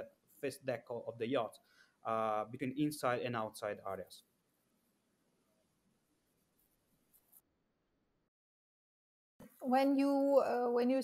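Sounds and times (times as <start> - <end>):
faint room hiss: 0.0 - 8.3.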